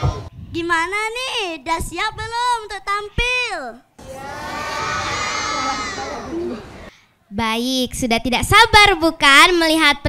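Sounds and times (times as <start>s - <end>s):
children shouting together: 4.0s - 6.9s.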